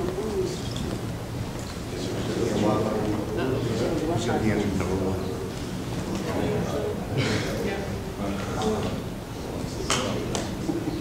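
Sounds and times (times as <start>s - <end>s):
murmur of a large room: 0.0s - 11.0s.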